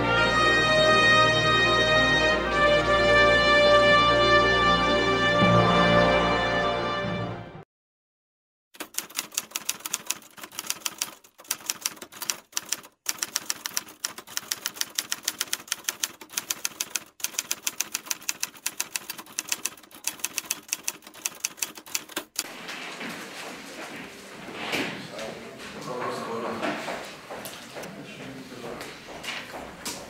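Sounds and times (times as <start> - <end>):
typewriter keys clattering: 8.8 - 22.4.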